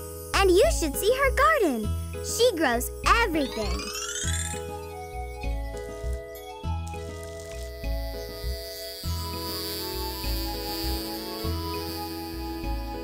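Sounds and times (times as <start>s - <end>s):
cartoon background music: 0.0s - 13.0s.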